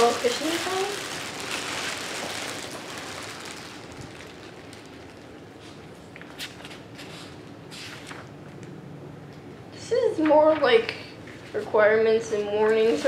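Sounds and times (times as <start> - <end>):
plastic packaging crinkling: 0.0 - 7.0.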